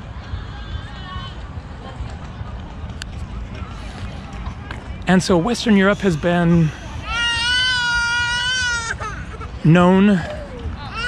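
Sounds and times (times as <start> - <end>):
young child crying high-pitched: 7.0 - 9.6, 10.2 - 11.0.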